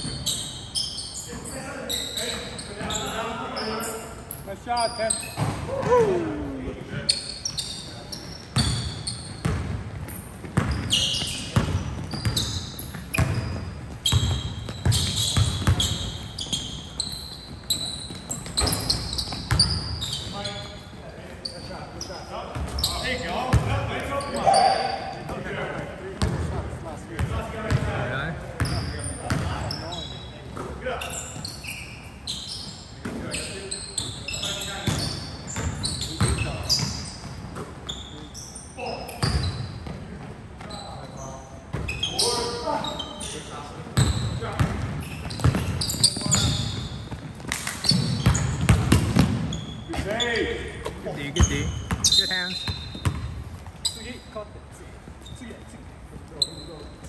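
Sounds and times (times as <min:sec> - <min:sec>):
sneakers squeaking: 0:00.0 - 0:57.0
players calling out: 0:01.2 - 0:08.2
basketball bouncing on wooden floor: 0:08.6 - 0:10.9, 0:11.5 - 0:16.0, 0:18.1 - 0:19.8, 0:44.0 - 0:50.0, 0:50.8 - 0:53.7.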